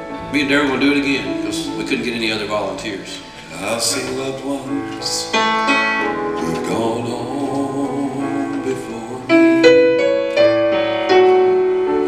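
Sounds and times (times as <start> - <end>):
piano playing gospel chords: 0.0 - 12.0.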